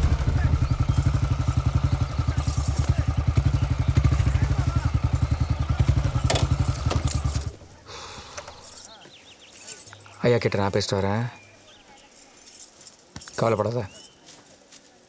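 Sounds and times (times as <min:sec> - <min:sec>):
motorcycle engine running: 0:00.0 - 0:08.8.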